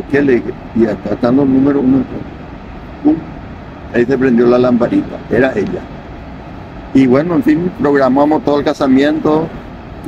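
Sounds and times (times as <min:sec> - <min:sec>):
waterfall rushing: 0:00.0 - 0:10.0.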